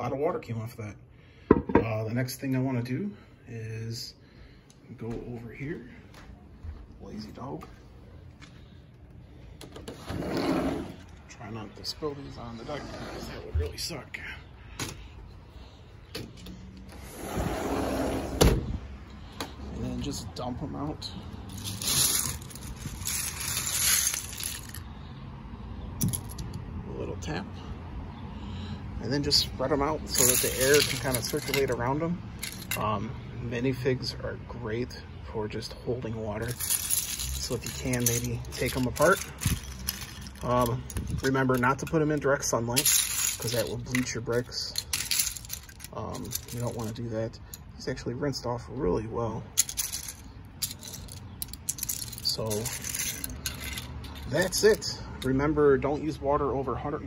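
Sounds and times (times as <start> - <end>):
plastic bricks clattering: 21.5 - 24.8, 36.5 - 41.9, 42.7 - 46.9.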